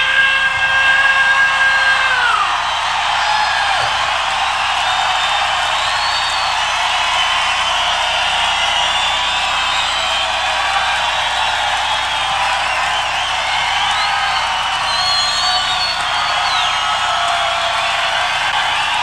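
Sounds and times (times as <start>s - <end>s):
crowd cheering and screaming: 0.0s - 19.0s
whistles and whoops: 0.0s - 19.0s.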